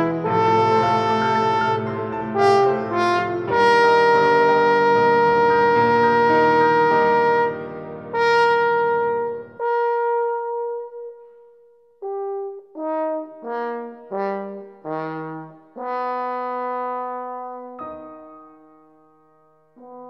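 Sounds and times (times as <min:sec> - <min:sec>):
french horn: 0:00.0 - 0:17.8, 0:19.8 - 0:20.0
piano accompaniment: 0:00.0 - 0:20.0.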